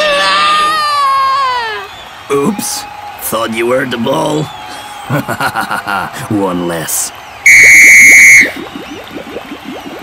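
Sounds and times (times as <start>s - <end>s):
referee's whistle blast: 7.4s - 8.9s.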